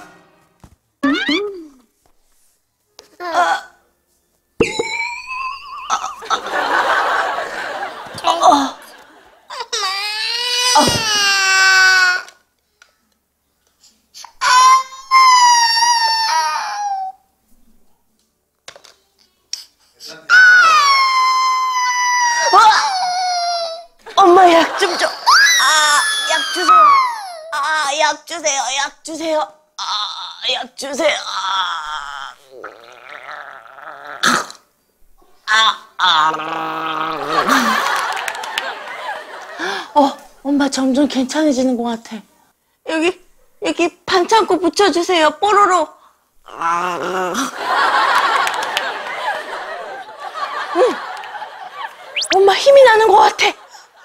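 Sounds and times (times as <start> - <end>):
toddler crying wails: 9.5 - 12.3, 14.4 - 17.2, 20.3 - 23.9, 25.3 - 27.6
woman gargling in throat: 32.5 - 34.6.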